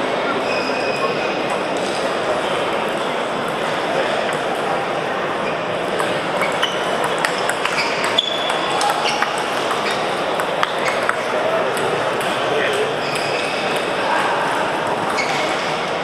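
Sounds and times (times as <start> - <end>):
babble of voices in a hall: 0.0 - 16.0
table tennis balls clicking: 5.8 - 14.1, 14.8 - 16.0.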